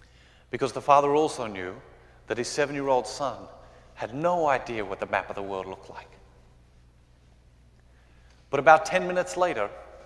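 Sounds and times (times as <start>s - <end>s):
low steady hum: 0.0s - 10.0s
echo of man's voice: 8.5s - 10.0s.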